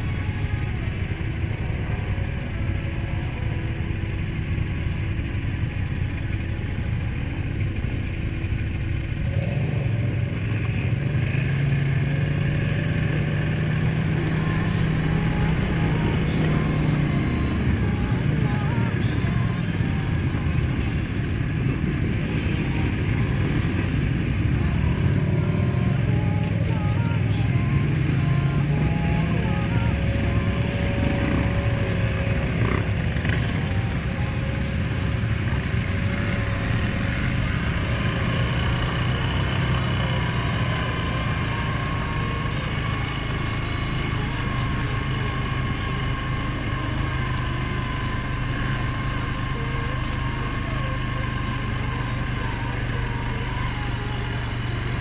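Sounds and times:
quad bike engine revving: 0:07.5 - 0:55.0.

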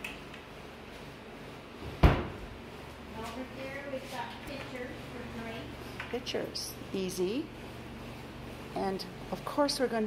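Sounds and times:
cabinet door banging shut: 0:02.0 - 0:02.4.

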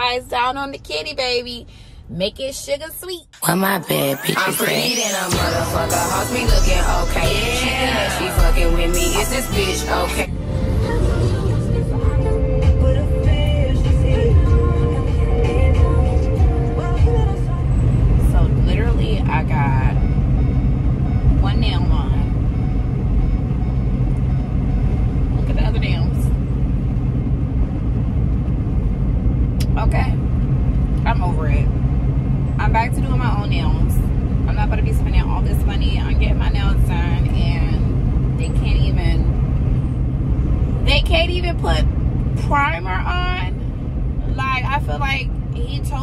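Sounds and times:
woman speaking: 0:00.0 - 0:10.3, 0:18.2 - 0:20.0, 0:21.4 - 0:22.3, 0:25.4 - 0:26.3, 0:29.6 - 0:30.2, 0:31.0 - 0:31.7, 0:32.6 - 0:39.3, 0:40.9 - 0:43.6, 0:44.3 - 0:46.0
car cabin rumble: 0:05.4 - 0:46.0.

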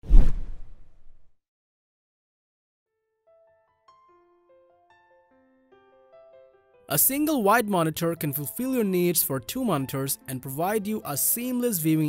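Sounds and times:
whoosh with deep hit: 0:00.0 - 0:01.3.

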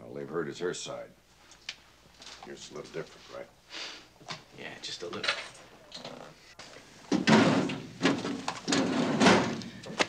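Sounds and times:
office chair scraping and creaking: 0:07.4 - 0:09.9.

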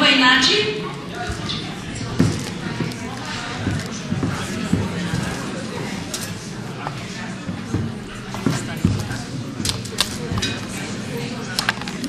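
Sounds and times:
murmur of voices: 0:00.0 - 0:12.0
dishes and utensils clinking: 0:07.6 - 0:12.0.

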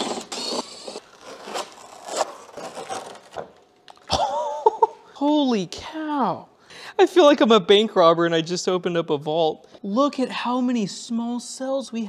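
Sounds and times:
insulating sheet scraping: 0:00.0 - 0:03.4
tape ripping: 0:00.0 - 0:04.1.

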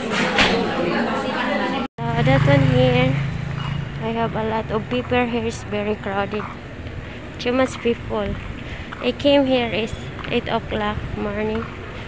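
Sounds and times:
person talking: 0:01.6 - 0:03.3, 0:04.0 - 0:06.6, 0:07.4 - 0:08.4, 0:09.0 - 0:11.7
motorcycle engine running: 0:02.0 - 0:07.0.

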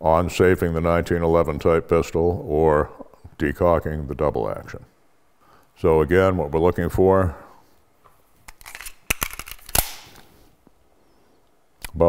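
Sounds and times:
pistol magazine reload clicks: 0:08.5 - 0:10.2.

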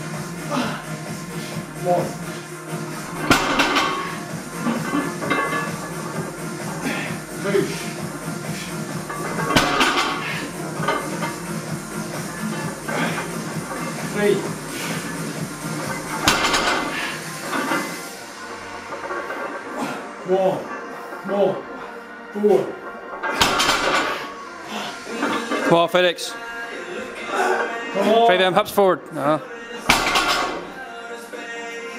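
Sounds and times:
background music with steady beat: 0:00.0 - 0:31.9
weight plates rattling: 0:03.0 - 0:06.8, 0:07.6 - 0:19.8, 0:22.7 - 0:24.4
barbell plates clanking on platform: 0:03.2 - 0:06.2, 0:09.0 - 0:11.4.

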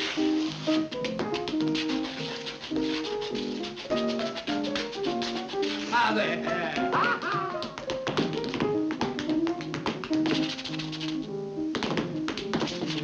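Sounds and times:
tap shoes on hard floor: 0:00.0 - 0:13.0
upright piano accompaniment: 0:00.0 - 0:13.0.

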